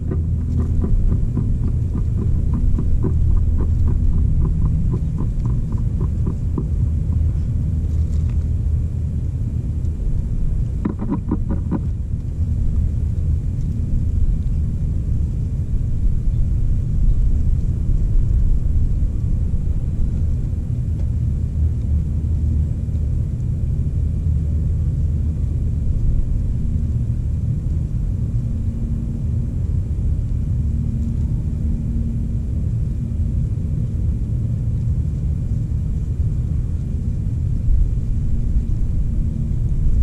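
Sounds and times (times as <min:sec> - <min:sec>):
faint hum: 0:00.0 - 0:40.0
wind buffeting microphone: 0:00.0 - 0:40.0.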